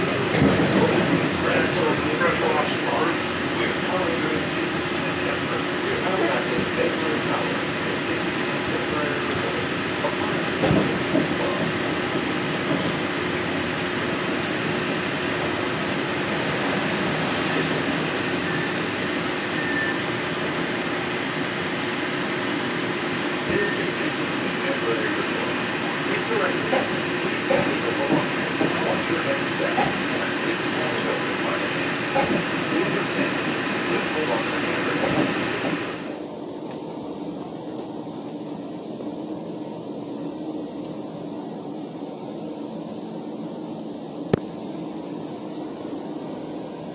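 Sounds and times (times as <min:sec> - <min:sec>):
monorail train rumbling: 0:00.0 - 0:46.9.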